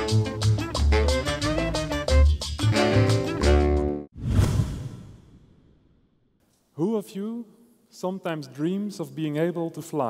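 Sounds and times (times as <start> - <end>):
whoosh sound effect: 4.1 - 5.9.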